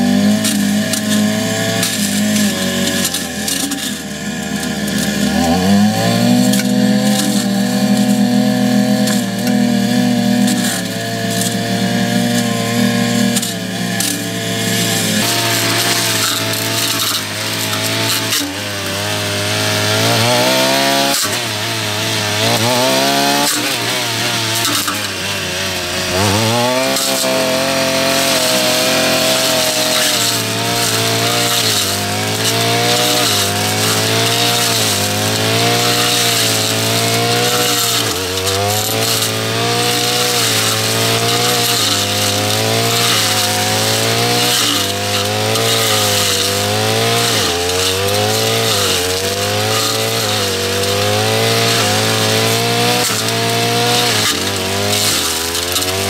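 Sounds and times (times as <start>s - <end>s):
brush cutter cutting weeds: 0.0s - 56.0s.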